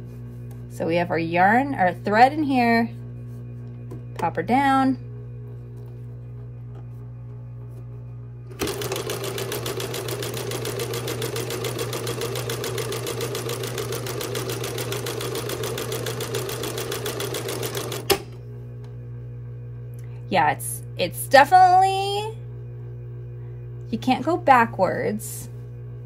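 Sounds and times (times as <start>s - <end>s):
electric sewing machine stitching: 8.5s - 18.2s.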